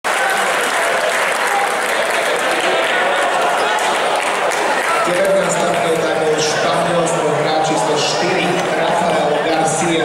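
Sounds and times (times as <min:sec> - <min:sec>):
crowd applauding and cheering: 0:00.0 - 0:06.6.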